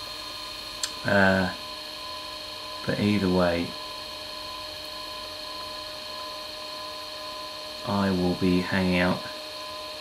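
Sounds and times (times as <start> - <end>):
electric pottery wheel humming: 0.0 - 10.0.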